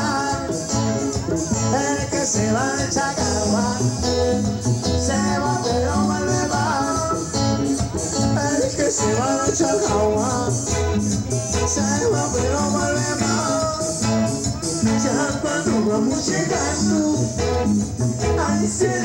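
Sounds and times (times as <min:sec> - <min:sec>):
live band playing latin dance music: 0:00.0 - 0:19.0.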